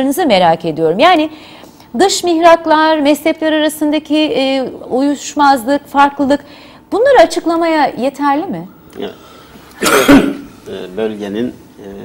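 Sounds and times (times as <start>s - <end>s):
person clearing throat: 9.8s - 10.5s
man speaking: 10.4s - 12.0s.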